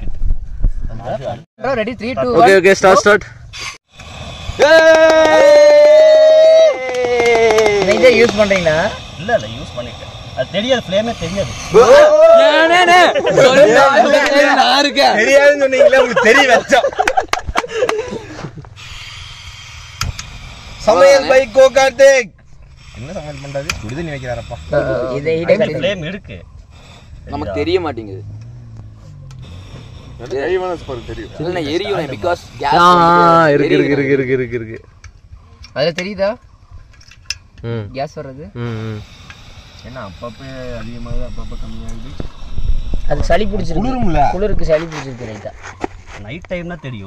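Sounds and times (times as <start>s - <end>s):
men talking: 0.9s - 3.4s, 4.6s - 19.6s, 20.6s - 36.5s, 37.6s - 47.0s
men calling out excitedly: 4.5s - 17.0s, 20.8s - 26.5s, 30.1s - 34.8s
man speaking: 7.6s - 17.0s, 30.2s - 34.8s, 37.7s - 39.1s
men laughing loudly: 11.7s - 14.8s, 15.4s - 18.7s.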